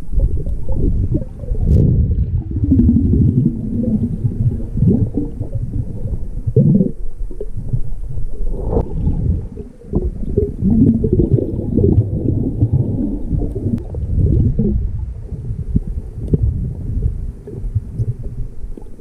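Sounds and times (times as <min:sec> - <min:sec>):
underwater rumble and gurgling: 0:00.0 - 0:19.0.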